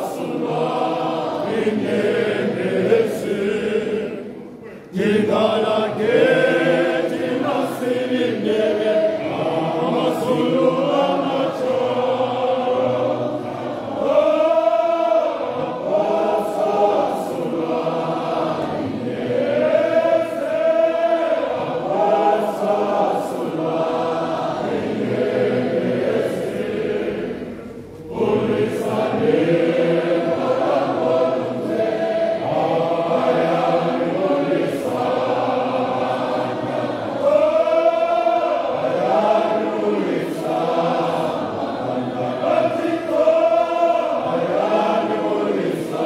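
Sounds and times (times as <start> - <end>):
congregation singing a hymn: 0.0 - 46.0.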